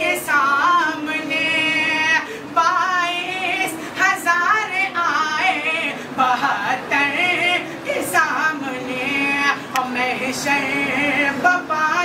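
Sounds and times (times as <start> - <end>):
young man singing unaccompanied: 0.0 - 12.0.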